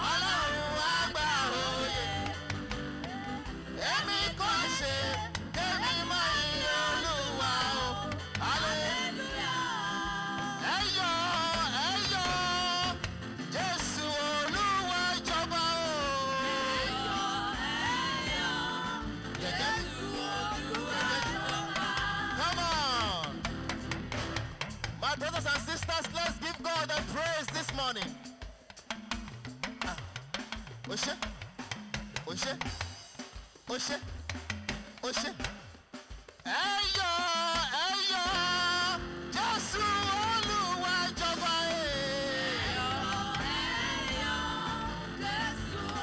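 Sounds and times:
person singing into microphone: 0.0s - 23.3s, 36.5s - 46.0s
bass line: 0.0s - 26.4s, 38.3s - 46.0s
band accompaniment: 0.0s - 46.0s
drum kit beat: 0.0s - 46.0s.

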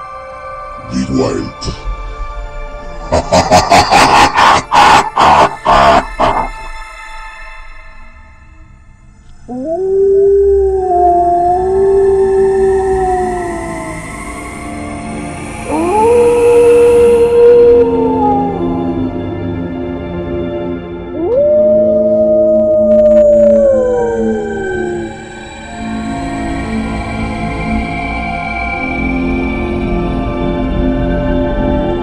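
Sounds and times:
dark ambient music: 0.0s - 32.0s
wolf howling: 3.2s - 6.7s, 9.5s - 14.8s, 15.5s - 19.4s, 21.1s - 25.9s.

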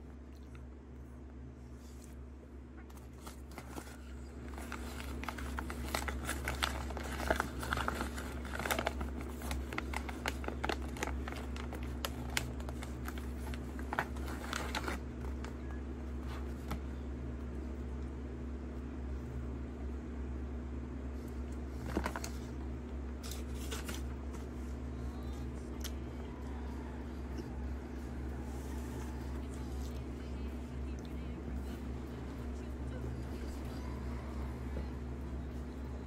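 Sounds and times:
low electrical hum: 0.0s - 36.0s
paper wrapper crinkling: 2.9s - 15.6s, 23.2s - 24.6s.

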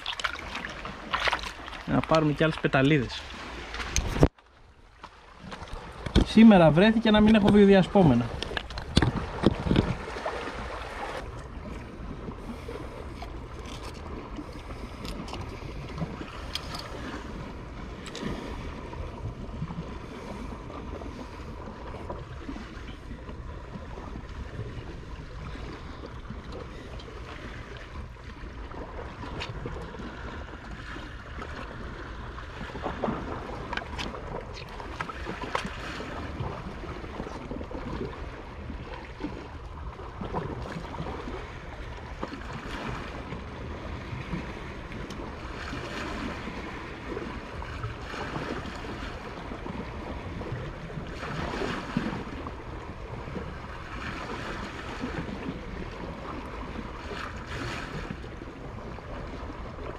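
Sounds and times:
sea water washing on rocks: 0.0s - 4.4s, 5.0s - 59.9s
wind rumbling on microphone: 0.0s - 59.9s.

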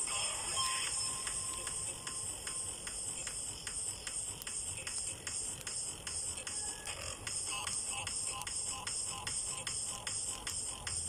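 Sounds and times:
campfire crackling: 0.0s - 11.0s.

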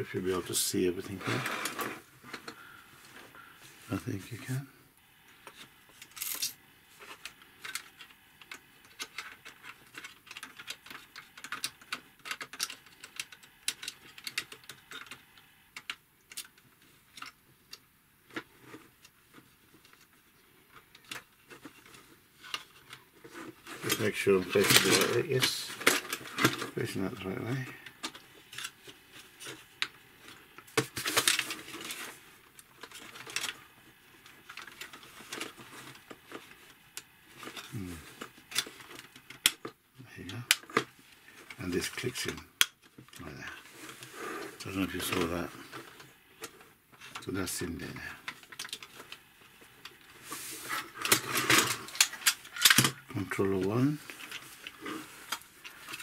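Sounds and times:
person speaking: 0.0s - 1.6s, 3.8s - 4.8s, 23.8s - 25.8s, 26.6s - 27.9s, 37.7s - 38.2s, 41.5s - 42.5s, 43.2s - 43.8s, 44.6s - 45.8s, 47.2s - 48.3s, 53.0s - 54.2s
plastic parts clicking and rattling: 5.4s - 56.0s.

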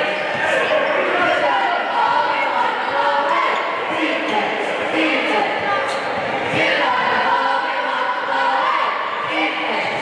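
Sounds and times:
spectators' voices and shouts: 0.0s - 10.0s.

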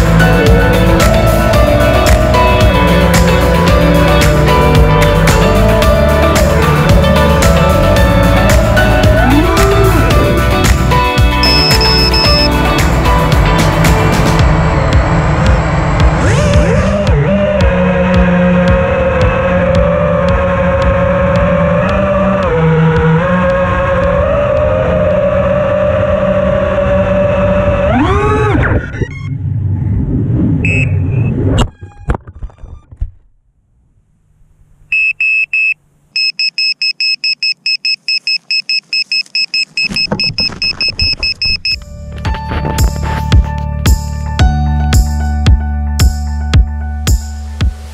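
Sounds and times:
drone motors whining: 0.0s - 29.7s
rapid buzzer beeps: 11.4s - 12.5s, 35.0s - 41.8s
drone crash: 12.4s - 18.0s.

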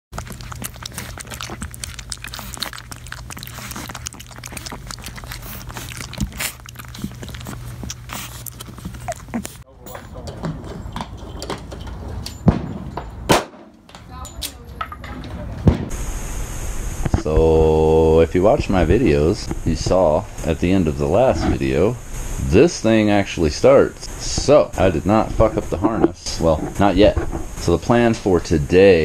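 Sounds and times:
puppy lapping milk: 0.1s - 9.7s
steady low hum: 0.2s - 29.0s.

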